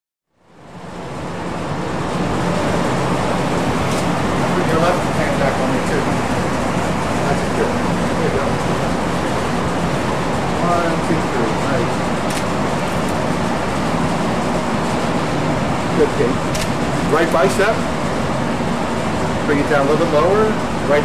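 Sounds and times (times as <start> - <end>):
steady background noise: 0.4 - 21.0.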